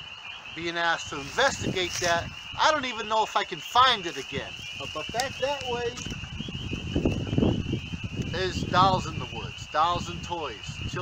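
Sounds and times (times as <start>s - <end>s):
spring peepers trilling: 0.0s - 11.0s.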